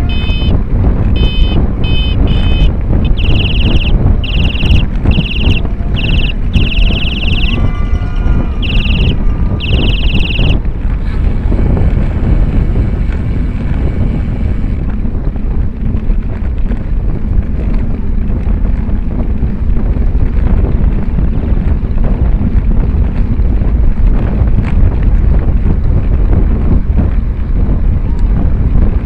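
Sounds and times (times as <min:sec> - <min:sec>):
wind rushing over microphone: 0:00.0 - 0:29.0.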